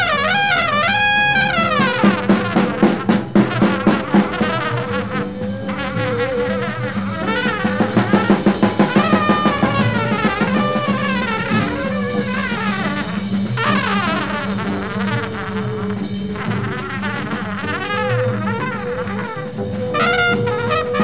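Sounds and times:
busy drums: 0:00.0 - 0:21.0
horns wailing: 0:00.0 - 0:21.0.

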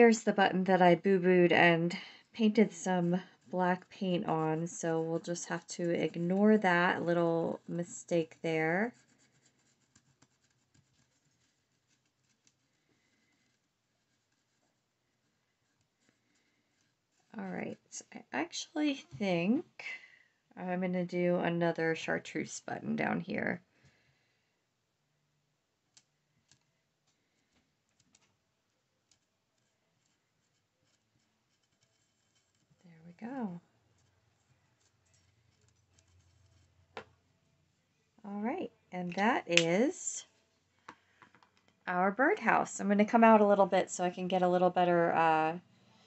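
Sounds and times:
marker tip ticking and rubbing: 0:29.0 - 0:32.7.

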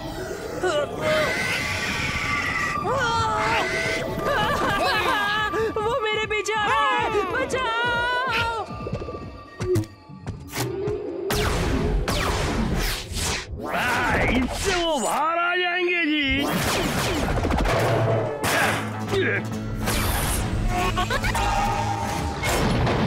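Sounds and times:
high squeaky creature cries: 0:00.7 - 0:04.6
cartoon background music: 0:16.4 - 0:23.0.

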